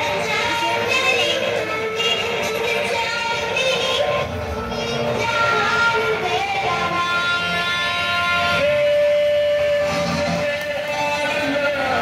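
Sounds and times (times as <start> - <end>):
music with long held note: 0.0 - 12.0.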